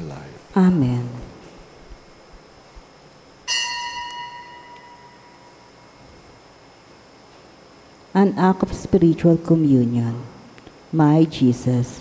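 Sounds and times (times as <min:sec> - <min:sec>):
altar bell ringing: 0:03.4 - 0:05.8.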